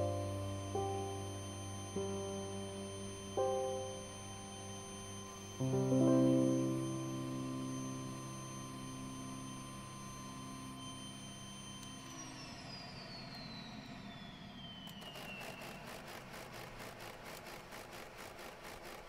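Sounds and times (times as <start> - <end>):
piano chord: 0.0 - 12.0
vacuum cleaner whine: 0.0 - 19.0.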